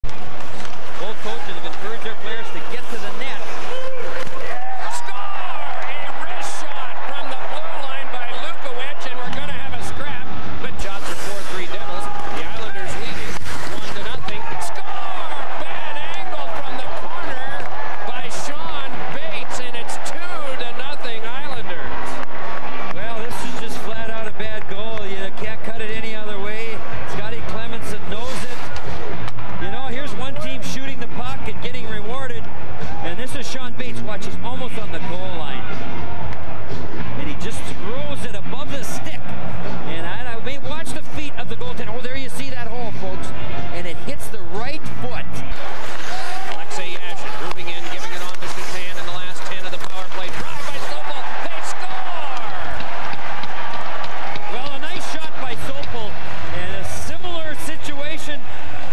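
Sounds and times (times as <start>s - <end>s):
arena crowd noise: 0.0s - 58.9s
puck and sticks knocking: 46.5s - 54.8s.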